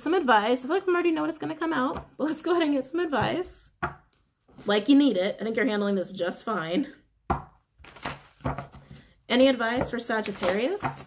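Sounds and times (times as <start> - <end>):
cards being shuffled: 7.8 - 9.0, 9.8 - 11.0.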